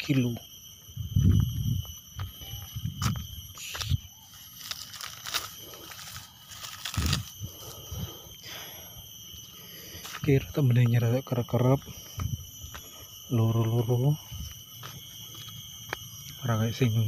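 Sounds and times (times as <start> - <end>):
high insect chorus: 0.0 - 17.0
dry mulch rustling and crackling: 3.8 - 7.4.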